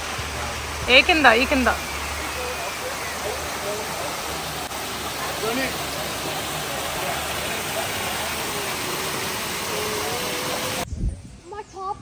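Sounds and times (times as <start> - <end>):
water rushing down rocks: 0.0 - 10.9.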